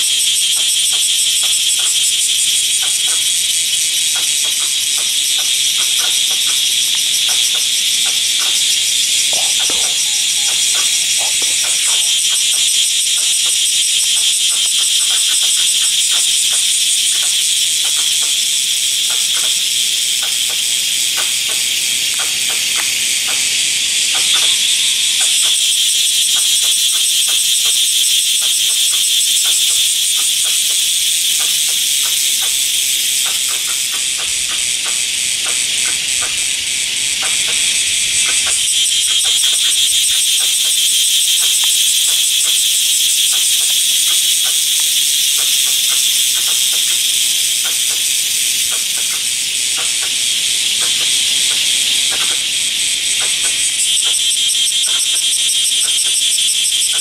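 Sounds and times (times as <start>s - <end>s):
cicadas buzzing: 0.0s - 57.0s.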